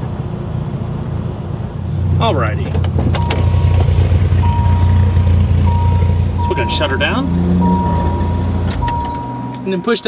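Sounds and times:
car engine idling: 0.0s - 10.0s
car warning tone: 3.1s - 10.0s.

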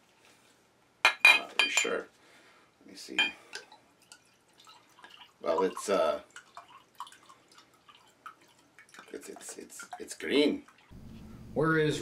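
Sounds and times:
liquid trickling into glass: 3.5s - 10.9s.

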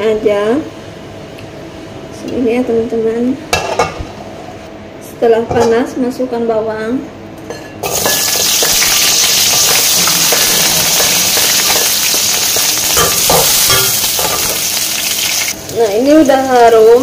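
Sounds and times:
shallots sizzling in hot oil: 7.8s - 17.0s.

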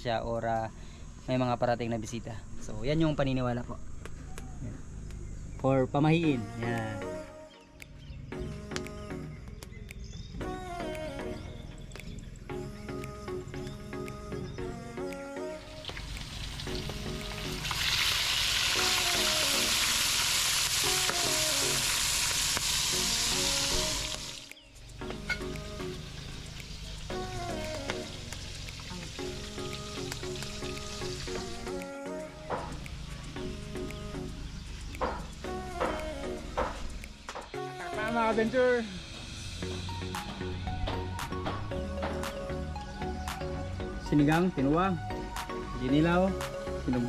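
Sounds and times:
background music: 5.2s - 47.0s
fish sizzling: 15.6s - 31.8s, 32.6s - 37.3s.

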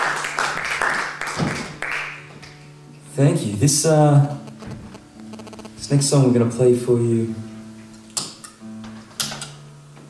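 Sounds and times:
guitar strings plucked: 3.2s - 6.6s.

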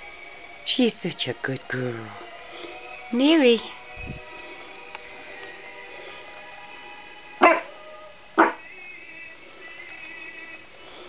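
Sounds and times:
small dog barking: 7.4s - 7.7s, 8.4s - 8.6s.

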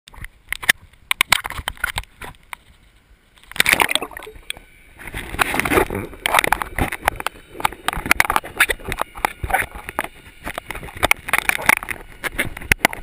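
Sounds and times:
sharp clicks and knocks: 0.1s - 2.7s, 3.4s - 13.0s
water splashing against camera housing: 0.1s - 2.8s, 3.4s - 13.0s.

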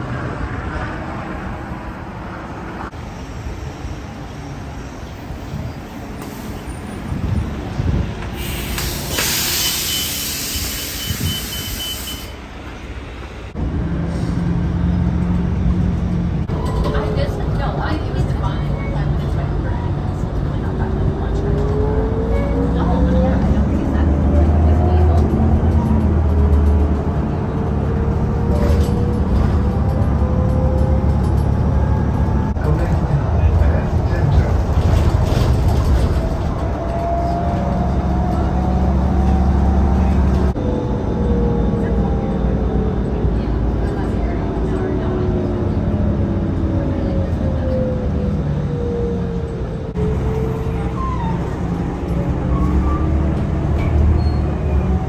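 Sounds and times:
bus engine rumble: 0.0s - 55.0s.

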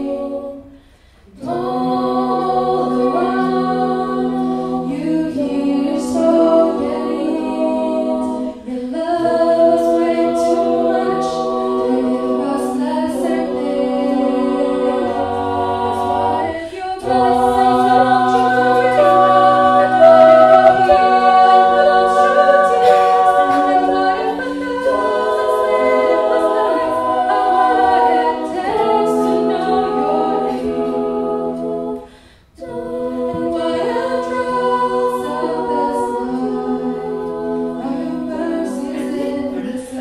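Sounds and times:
a cappella ensemble singing: 0.0s - 40.0s.

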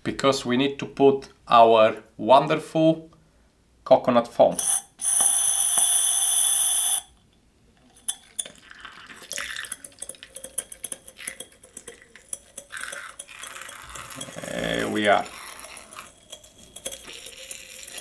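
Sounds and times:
gas hissing from foam siphon: 4.6s - 7.1s
clicks spurts and spatters: 8.0s - 18.0s.

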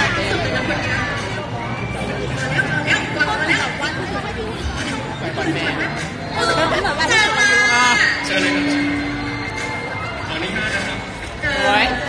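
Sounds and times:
people talking: 0.0s - 9.7s
crowd chatter: 0.0s - 12.0s.

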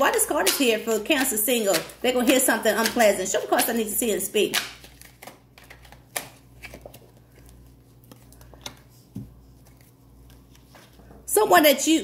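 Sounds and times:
cards being shuffled: 0.1s - 11.0s.

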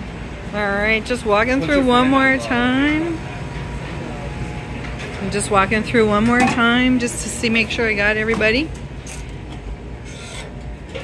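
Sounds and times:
kitchen room hum: 0.0s - 11.0s.

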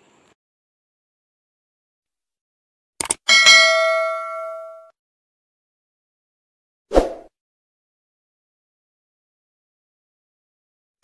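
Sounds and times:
short clicks: 3.0s - 3.2s
bright bell tone: 3.3s - 4.9s.

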